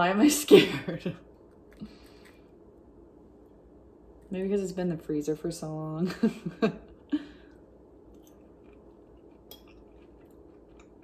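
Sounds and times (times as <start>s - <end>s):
person chewing quietly: 1.3s - 2.7s, 6.9s - 11.0s.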